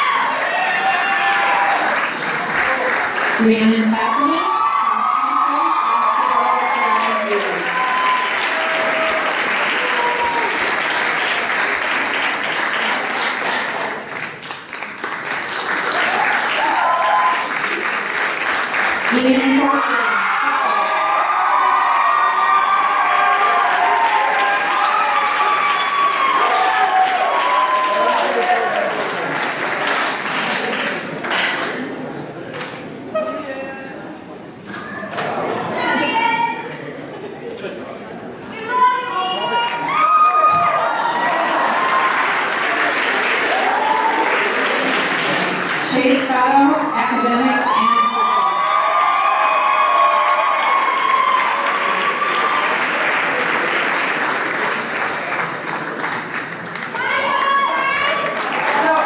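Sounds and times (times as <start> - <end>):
audience applauding: 0.0 - 32.9, 38.8 - 59.0.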